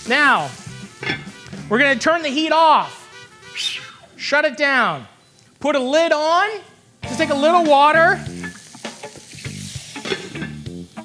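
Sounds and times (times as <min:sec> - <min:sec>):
burger patties sizzling in pan: 0:00.0 - 0:01.7, 0:07.0 - 0:11.0
water hissing into steam: 0:08.0 - 0:10.5.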